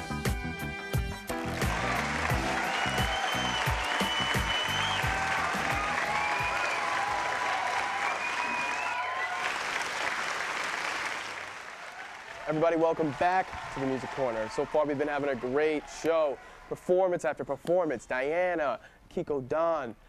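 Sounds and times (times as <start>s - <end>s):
intro music with beat: 0.0s - 6.6s
audience applause and cheering: 1.3s - 17.0s.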